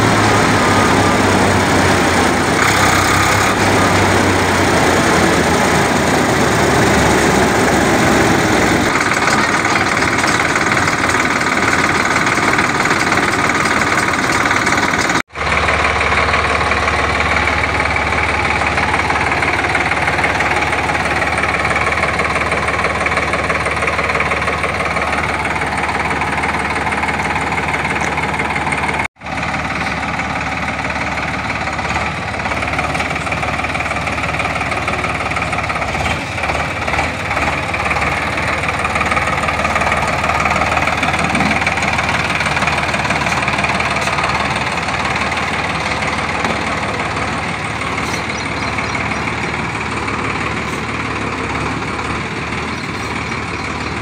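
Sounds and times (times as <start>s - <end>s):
diesel tractor engine running: 0.0s - 54.0s.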